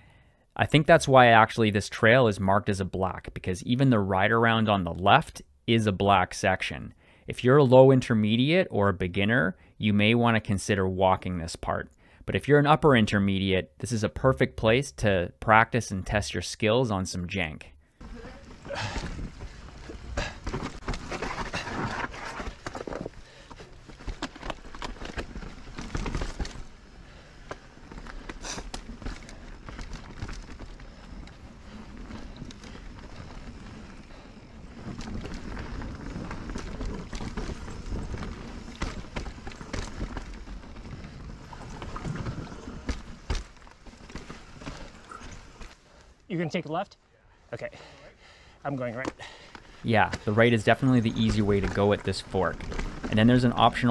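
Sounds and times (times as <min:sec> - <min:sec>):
bike tyres crunching on dirt: 0:18.0 - 0:46.2, 0:49.2 - 0:53.9
bike rattling and knocking: 0:18.1 - 0:45.7.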